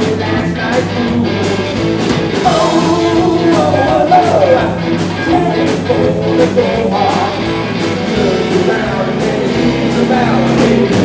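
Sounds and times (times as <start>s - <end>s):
live rock band playing: 0.0s - 11.0s
sliding lead guitar line: 0.0s - 11.0s.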